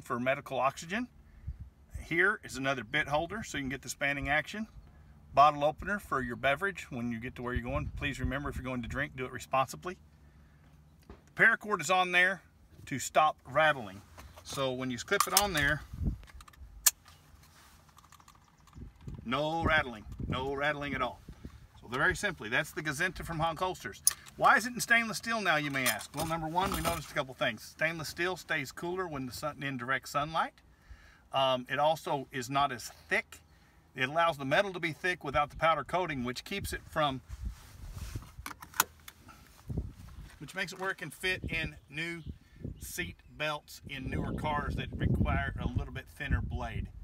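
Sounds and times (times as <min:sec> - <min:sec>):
metal hardware clicking and clinking: 0:14.4 - 0:20.3, 0:23.8 - 0:27.1
sharp metallic click: 0:15.1 - 0:17.2, 0:24.0 - 0:24.5.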